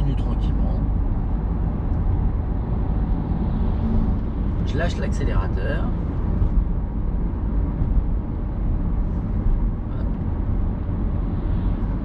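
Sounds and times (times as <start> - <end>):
road and tyre noise: 0.0 - 12.0.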